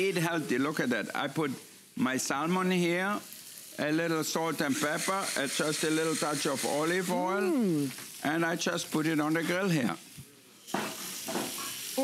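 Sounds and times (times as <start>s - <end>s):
fish sizzling on a grill: 0.0s - 12.0s.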